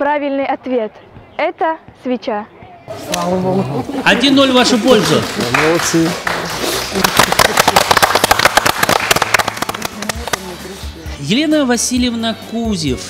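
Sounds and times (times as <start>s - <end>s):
small group clapping: 4.1s - 10.6s.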